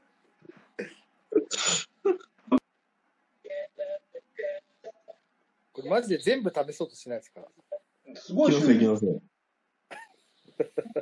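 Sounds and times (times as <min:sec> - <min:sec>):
man laughing breathily: 0:10.5 - 0:11.0.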